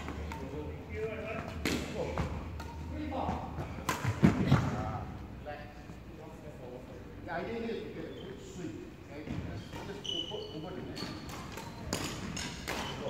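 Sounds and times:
racket hitting shuttlecock: 1.5s - 2.8s, 3.8s - 4.6s, 11.2s - 13.0s.

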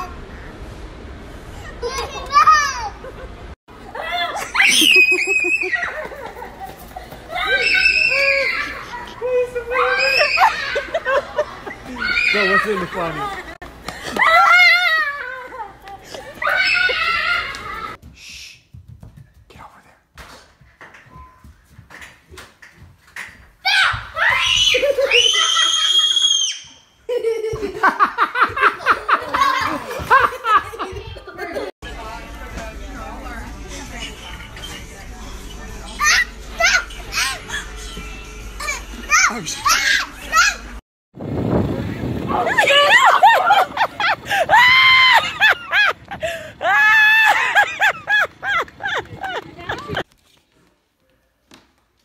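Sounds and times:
child laughing: 4.0s - 9.2s, 9.8s - 18.0s, 24.6s - 25.9s, 27.1s - 31.7s, 36.0s - 38.0s, 42.6s - 50.0s
child screaming: 7.4s - 9.0s, 9.8s - 10.8s, 23.7s - 26.7s
voices: 29.4s - 40.8s, 41.9s - 50.0s.

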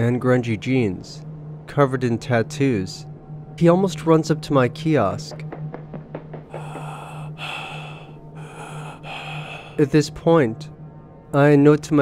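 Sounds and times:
low steady hum: 0.0s - 12.0s
long breaths: 6.5s - 9.9s.

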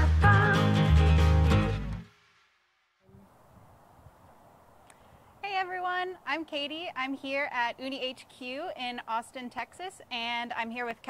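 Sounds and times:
faint background hiss: 0.0s - 11.0s
woman speaking: 5.4s - 11.0s.

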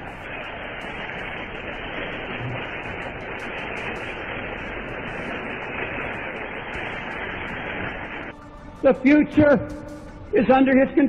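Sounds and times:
static hiss: 0.0s - 10.8s.

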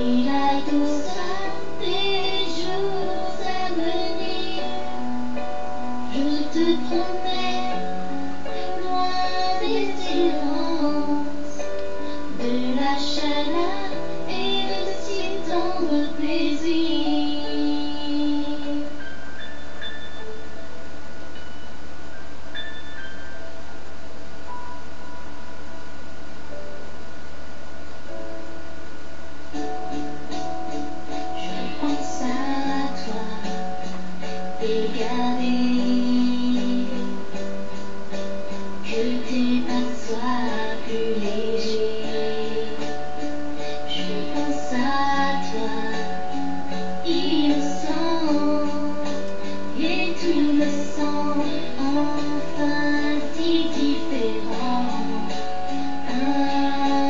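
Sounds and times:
woman singing: 0.0s - 5.1s, 6.0s - 19.0s, 31.3s - 37.3s, 38.8s - 57.0s
backing track of sustained chords: 0.0s - 57.0s
steady low hum: 0.0s - 57.0s
sustained bell-like notes: 19.4s - 23.9s.

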